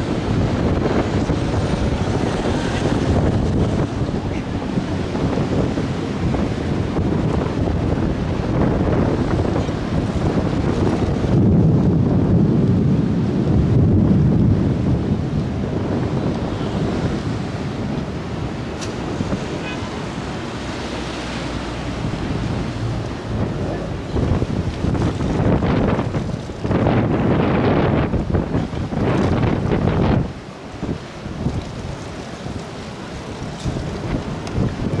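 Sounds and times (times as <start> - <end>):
surf washing: 0.0 - 35.0
wind buffeting microphone: 0.0 - 35.0.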